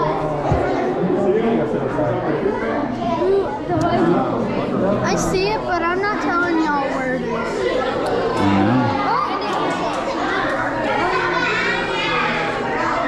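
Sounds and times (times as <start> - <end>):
people chattering indoors: 0.0 - 13.0.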